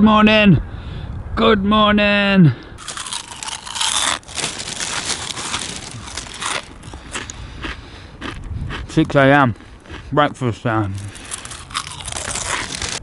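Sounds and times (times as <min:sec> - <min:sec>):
cornflakes crunching: 0:02.8 - 0:07.8, 0:11.0 - 0:13.0.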